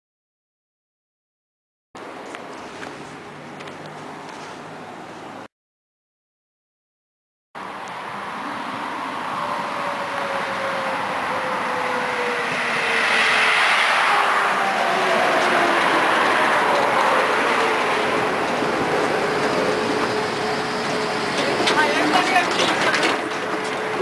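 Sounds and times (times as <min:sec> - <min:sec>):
electric tram pulling in: 0:07.6 - 0:24.0.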